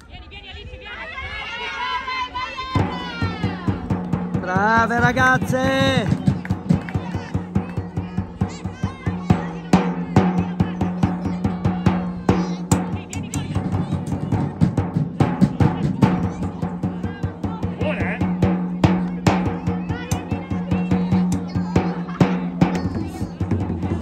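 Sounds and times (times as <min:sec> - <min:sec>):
drumming in a quick rhythm: 0:02.7 - 0:24.0.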